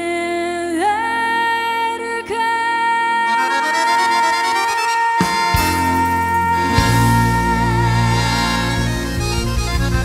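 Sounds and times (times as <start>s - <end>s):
woman singing long high note: 0.0s - 8.8s
tango band with accordion: 3.3s - 10.0s.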